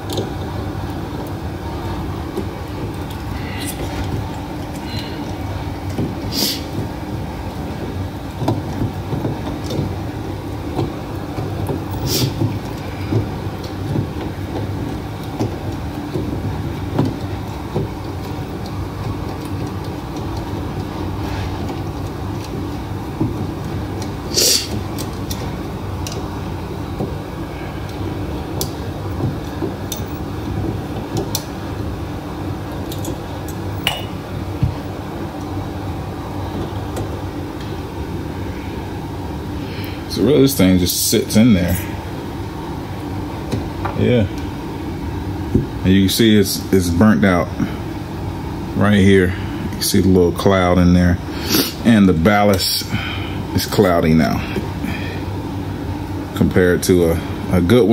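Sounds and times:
low background hum: 0:00.0 - 0:57.9.

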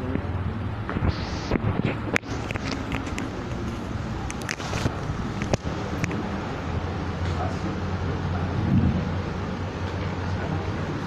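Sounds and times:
low rumbling on microphone: 0:07.4 - 0:11.0.

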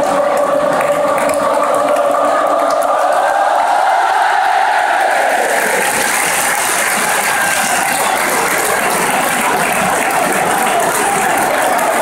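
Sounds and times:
stadium crowd cheering and chanting: 0:00.0 - 0:12.0.

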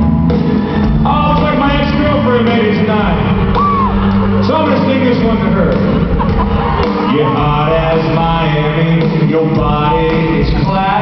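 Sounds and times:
country band playing: 0:00.0 - 0:11.0.

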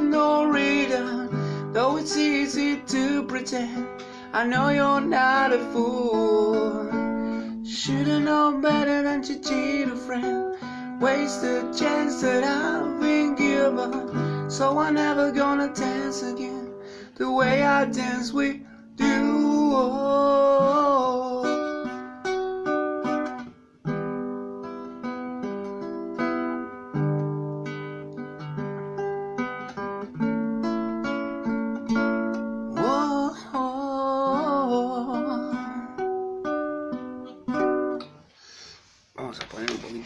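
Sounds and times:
person singing: 0:00.0 - 0:22.2, 0:32.7 - 0:36.2
acoustic guitar playing: 0:00.0 - 0:40.0.

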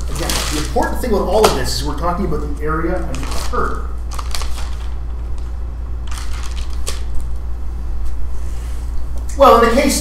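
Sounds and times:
rustling crackling noises: 0:00.0 - 0:08.8.

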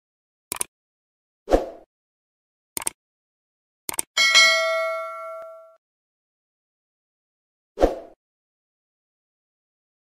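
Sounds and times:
bright bell ding: 0:04.2 - 0:05.8.

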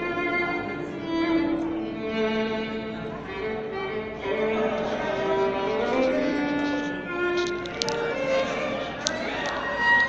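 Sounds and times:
violin slow melody: 0:00.0 - 0:10.0.

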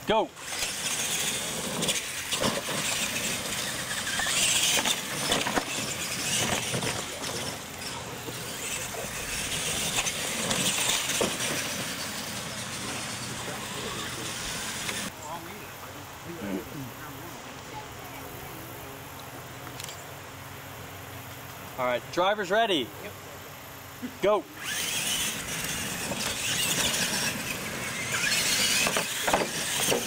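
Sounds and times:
toy truck motors whirring on dirt: 0:00.0 - 0:15.7, 0:24.2 - 0:30.0.

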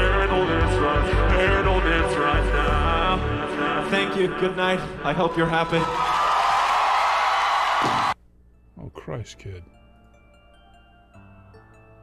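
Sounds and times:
audience applauding and cheering: 0:05.8 - 0:08.2.

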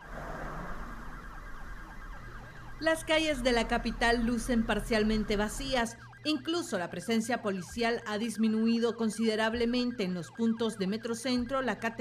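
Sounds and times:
street traffic: 0:00.0 - 0:06.2
emergency vehicle siren: 0:00.0 - 0:12.0.

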